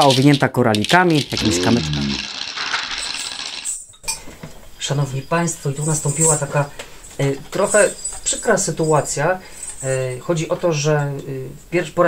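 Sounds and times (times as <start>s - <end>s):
shaker rattling: 0.0s - 4.0s, 5.7s - 10.4s.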